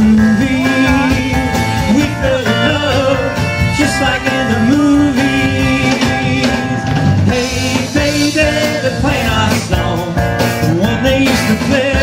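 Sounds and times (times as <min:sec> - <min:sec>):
drum kit: 0:00.0 - 0:12.0
electric guitar strummed: 0:00.0 - 0:12.0
person singing: 0:00.0 - 0:12.0
rock band playing: 0:00.0 - 0:12.0.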